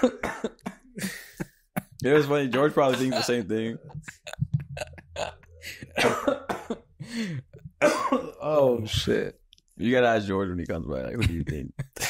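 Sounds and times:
cough: 0:00.0 - 0:00.9, 0:06.0 - 0:06.9, 0:07.8 - 0:08.4
man laughing: 0:00.0 - 0:06.5, 0:11.2 - 0:12.0.

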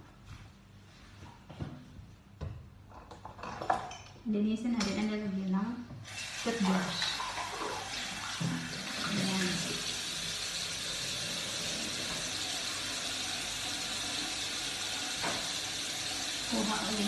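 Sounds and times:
tap water pouring into basin: 0:06.0 - 0:17.0.

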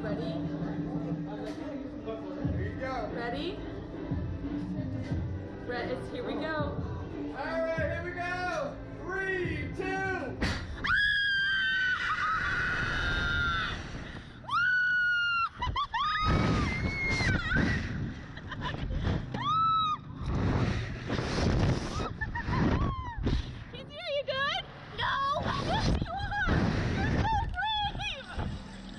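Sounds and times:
wind rushing across microphone: 0:20.2 - 0:23.6.

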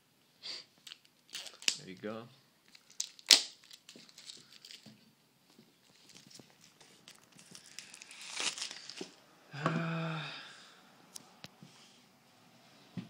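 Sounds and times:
box packaging crinkling: 0:00.9 - 0:01.8, 0:02.7 - 0:04.9, 0:05.8 - 0:09.2.

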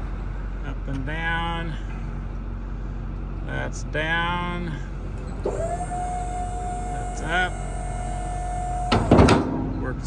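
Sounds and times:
diesel engine idling: 0:00.0 - 0:10.0
pump motor whine: 0:05.3 - 0:09.6
metal clank of gate: 0:08.8 - 0:09.9.

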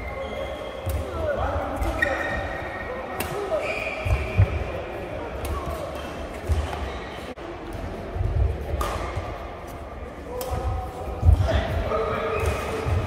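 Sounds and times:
racket striking shuttlecock: 0:08.7 - 0:09.3.

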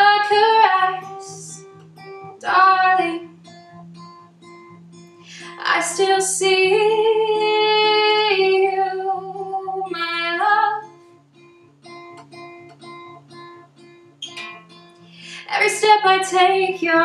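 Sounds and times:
acoustic guitar picking: 0:00.0 - 0:17.0.

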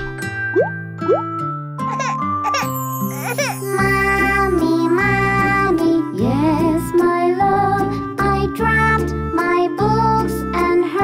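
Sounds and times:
light cartoon background music: 0:00.0 - 0:11.0.

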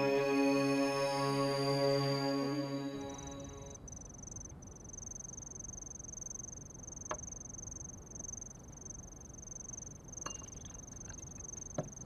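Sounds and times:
high-pitched cricket trill: 0:00.0 - 0:10.5.

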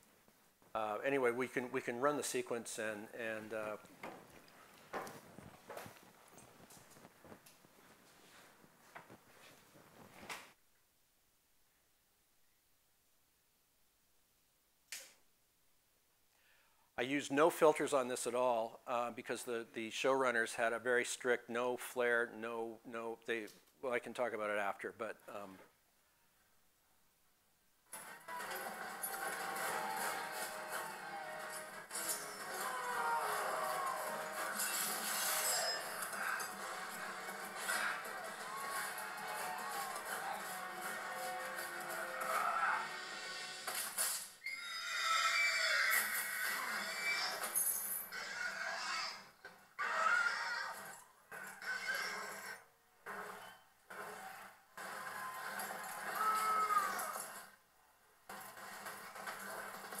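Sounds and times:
horses whinnying: 0:44.4 - 0:52.6.

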